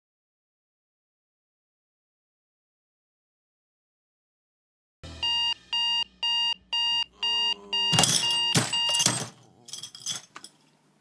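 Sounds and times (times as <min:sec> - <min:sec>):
digital alarm clock beeping: 0:05.1 - 0:09.1.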